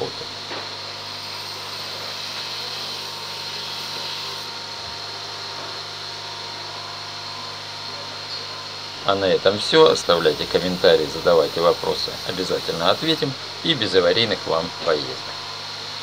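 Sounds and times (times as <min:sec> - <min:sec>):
steady mechanical hum: 0:00.0 - 0:16.0
thin high tone: 0:09.9 - 0:13.3.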